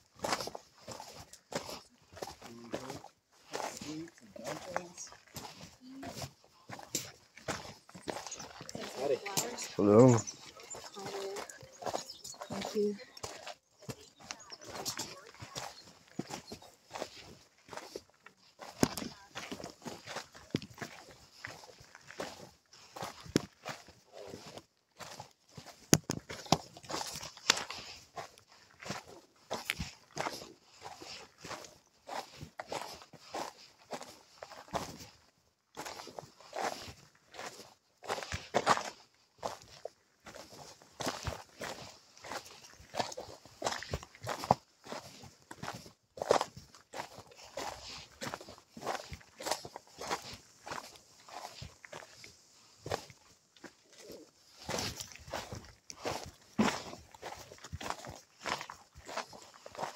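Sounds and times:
footsteps on rocky dirt trail: 0.0 - 59.9.

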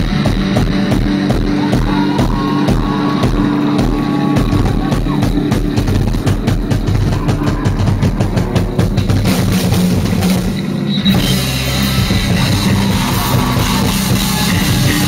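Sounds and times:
bass guitar: 0.0 - 15.0
drum kit: 0.0 - 15.0
electric guitars: 0.0 - 15.0.

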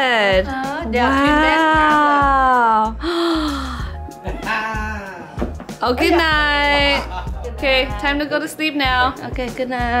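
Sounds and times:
background music with bass line: 0.0 - 10.0
person gasping exclamation: 3.0 - 4.0.

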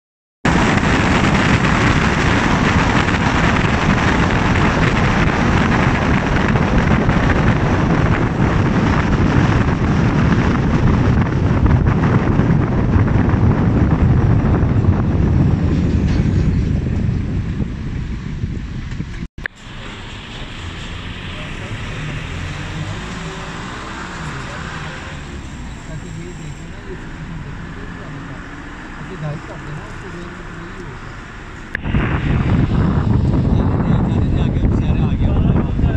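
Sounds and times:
car road and wind noise: 0.4 - 35.9.

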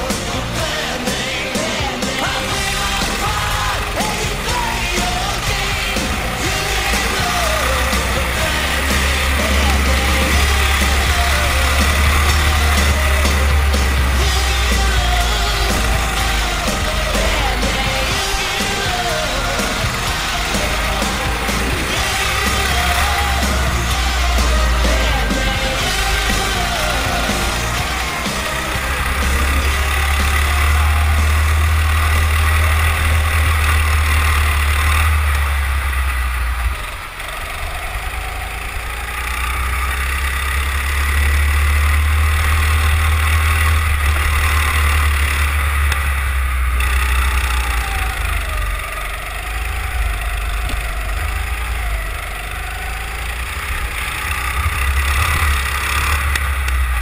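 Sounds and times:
kart engine running at speed: 0.0 - 57.0
road noise: 0.0 - 57.0.

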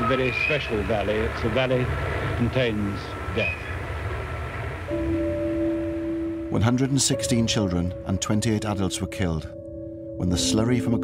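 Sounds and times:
old film soundtrack hum: 0.0 - 11.0.

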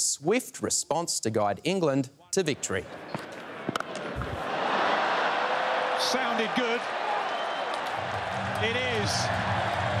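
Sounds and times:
stadium crowd cheering: 2.5 - 10.0.

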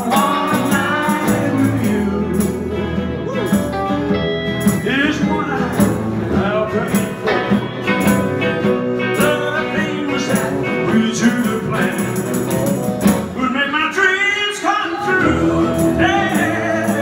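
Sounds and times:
person singing: 0.0 - 3.8, 4.6 - 17.0
live rock band playing: 0.0 - 17.0.

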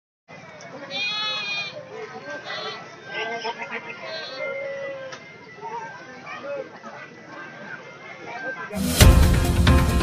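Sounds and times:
crowd murmur: 0.3 - 10.0
goat bleating: 0.9 - 1.8, 2.4 - 4.8.

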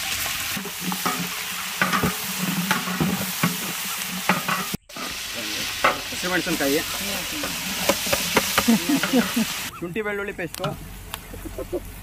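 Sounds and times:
food sizzling in a pot: 0.0 - 9.7
ladle stirring and scraping: 0.0 - 9.7.

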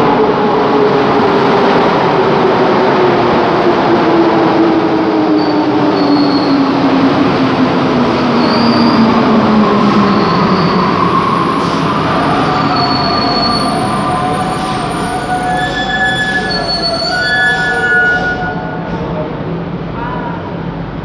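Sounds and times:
high brake squealing: 10.1 - 19.0.

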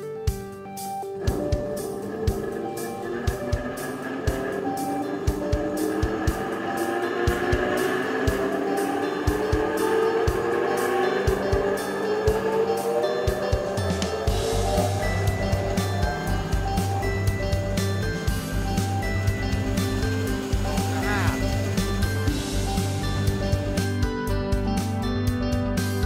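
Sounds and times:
background music with a beat: 0.0 - 26.0
bandsaw hum rising in pitch: 1.0 - 25.0.

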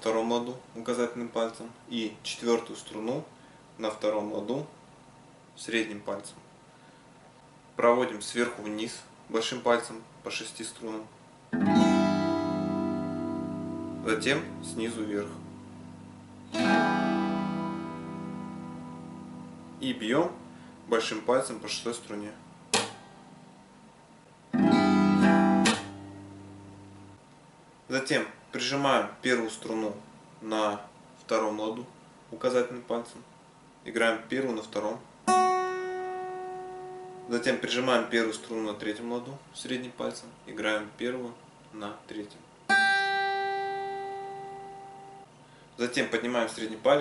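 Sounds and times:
acoustic guitar strumming: 11.5 - 21.1, 22.5 - 23.3, 24.5 - 27.2, 35.3 - 37.3, 42.7 - 45.2
sharp percussive hit: 22.7 - 23.2.

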